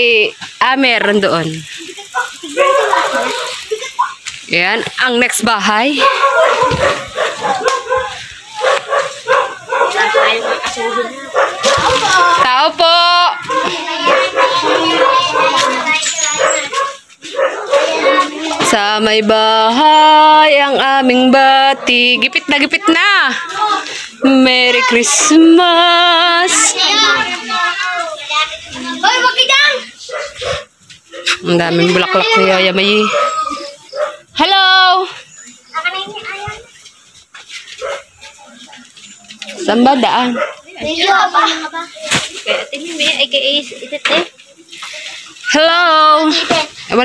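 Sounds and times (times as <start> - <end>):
people's voices: 0.0 - 47.0
dog barking: 2.2 - 3.6, 5.9 - 12.5, 13.4 - 18.3, 30.0 - 31.4, 33.0 - 34.3, 37.8 - 38.2, 40.2 - 40.7.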